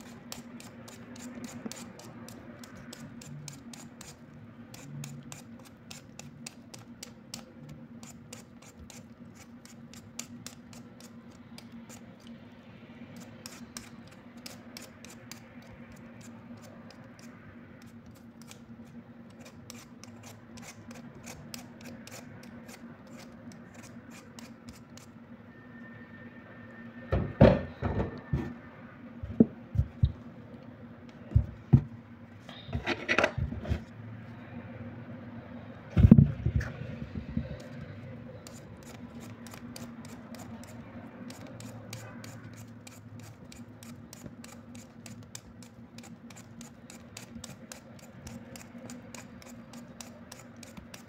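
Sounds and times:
peeler scraping potato skin: 0.0s - 12.4s, 13.1s - 25.2s, 37.5s - 51.0s.

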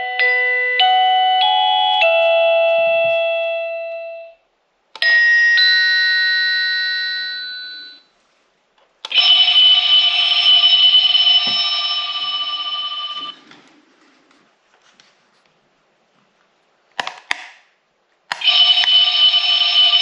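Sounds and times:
two-note doorbell chime: 0.0s - 4.4s, 5.0s - 8.0s, 9.2s - 13.4s.

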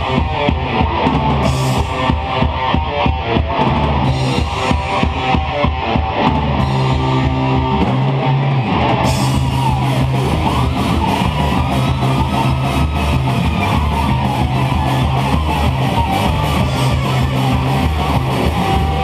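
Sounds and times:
heavy metal band playing: 0.0s - 19.0s.

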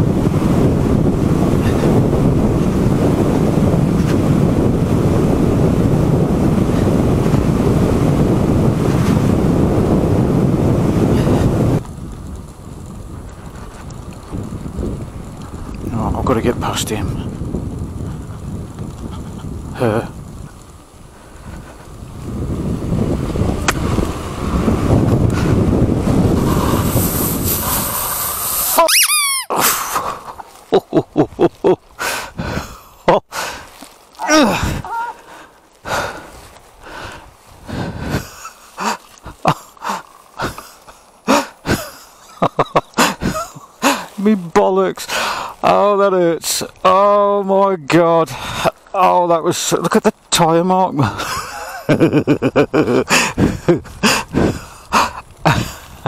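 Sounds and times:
tyre skidding on gravel: 31.6s - 44.5s
man's breathless voice: 32.0s - 41.7s, 43.1s - 45.7s, 48.3s - 48.8s, 51.0s - 51.3s, 53.0s - 56.0s.

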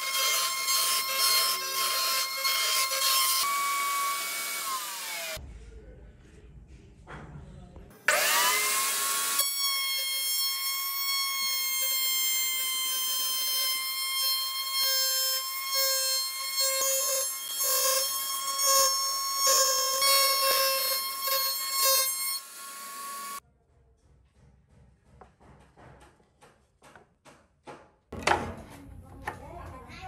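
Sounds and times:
router cutting wood: 0.0s - 5.4s, 8.0s - 23.4s
router whine: 0.0s - 5.4s, 8.1s - 9.4s, 14.4s - 23.4s.

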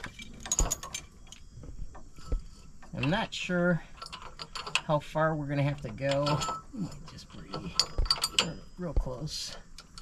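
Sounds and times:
chain jangling: 0.0s - 1.4s, 3.8s - 4.9s, 5.9s - 8.8s
metallic clinks: 0.0s - 5.0s, 5.7s - 10.0s.

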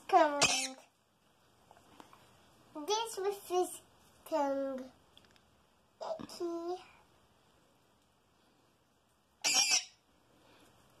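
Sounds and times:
parrot squawk: 0.4s - 0.8s, 9.4s - 10.0s.

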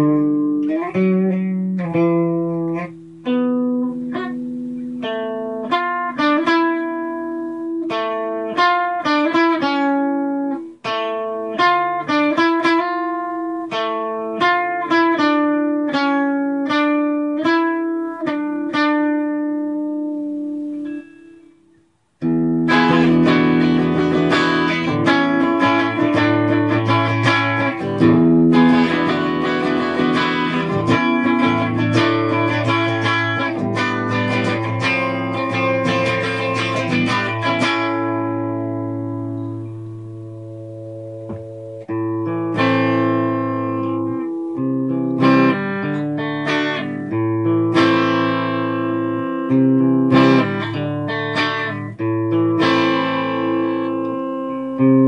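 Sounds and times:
solo electric guitar: 0.0s - 55.0s.

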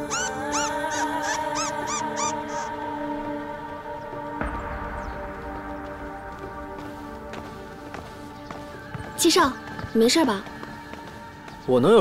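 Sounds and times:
small animal squeaking: 0.0s - 2.7s
soft background music: 0.0s - 12.0s.

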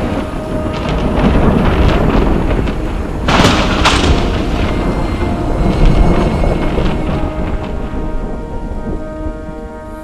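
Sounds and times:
low thunder: 0.0s - 10.0s
rain falling: 0.0s - 10.0s.

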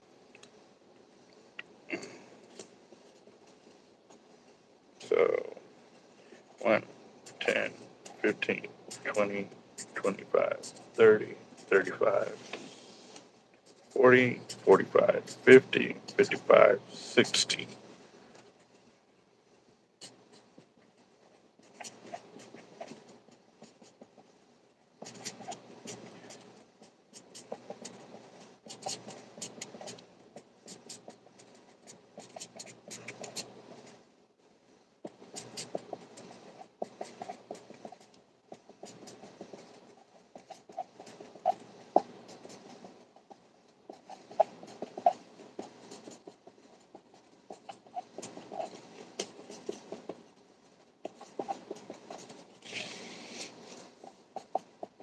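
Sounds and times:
pen scratching on paper: 6.0s - 17.8s, 20.0s - 34.0s, 35.0s - 55.0s.

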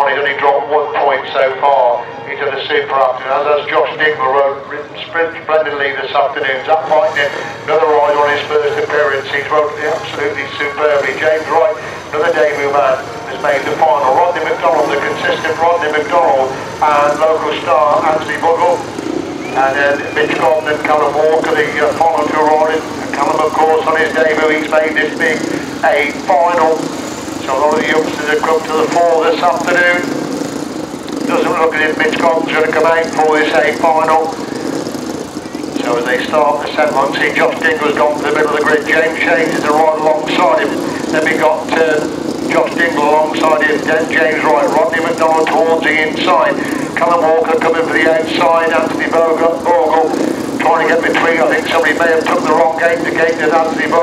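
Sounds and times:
man talking: 0.0s - 18.9s, 19.6s - 30.2s, 31.2s - 34.5s, 35.6s - 54.0s
motorcycle engines running: 0.0s - 54.0s.

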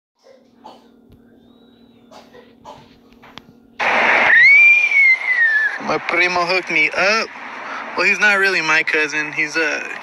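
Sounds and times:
faint low hum: 0.2s - 10.0s
rush of noise with whistling tone: 3.8s - 8.9s.

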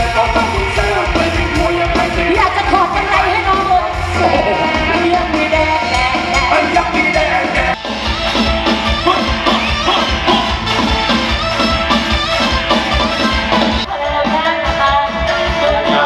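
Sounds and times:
steady drum beat: 0.0s - 16.0s
woman singing with live band: 2.2s - 6.4s, 13.9s - 16.0s.

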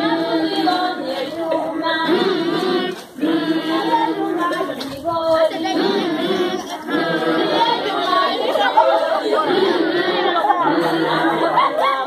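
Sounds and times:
children chattering: 0.0s - 12.0s
children singing unaccompanied: 0.0s - 12.0s.

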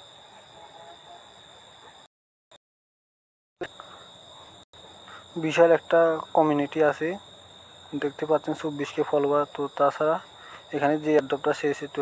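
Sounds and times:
constant high-pitched tone: 0.0s - 2.1s, 3.6s - 12.0s.

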